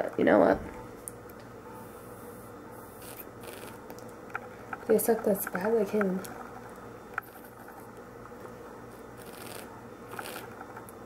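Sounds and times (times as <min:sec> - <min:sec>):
low steady hum: 0:00.0 - 0:11.0
sucking smoothie through a straw: 0:03.0 - 0:03.8, 0:09.2 - 0:10.6.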